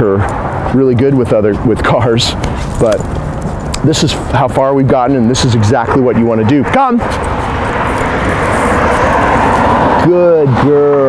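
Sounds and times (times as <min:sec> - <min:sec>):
car driving past: 0:04.1 - 0:11.0.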